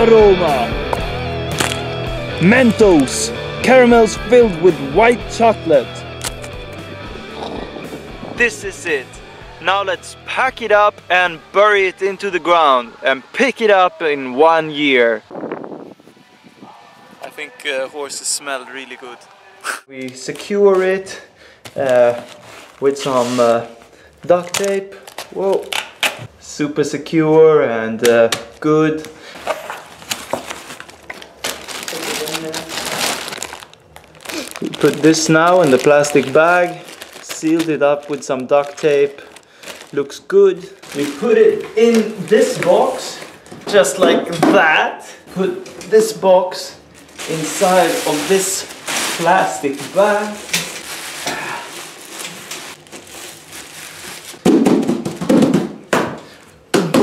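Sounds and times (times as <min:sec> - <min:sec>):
plastic bag crinkling: 0:21.6 - 0:25.7, 0:29.2 - 0:44.0, 0:46.8 - 0:54.5.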